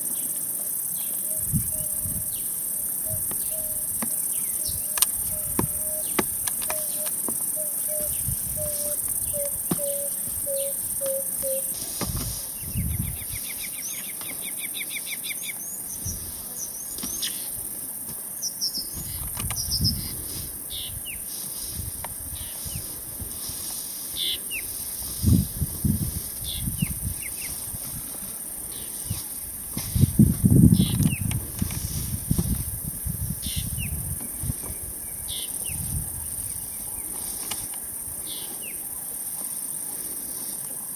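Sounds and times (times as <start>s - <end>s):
wild birds calling: 0.0s - 12.0s
high insect hiss: 0.0s - 40.9s
rising bird chirps: 1.0s - 11.8s
whistled bird notes: 3.0s - 11.8s
dull low thumps: 4.7s - 6.4s.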